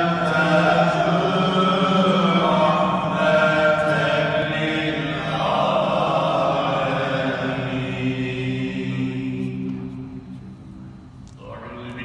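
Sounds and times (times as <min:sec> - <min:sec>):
men chanting religious recitation: 0:00.0 - 0:09.9.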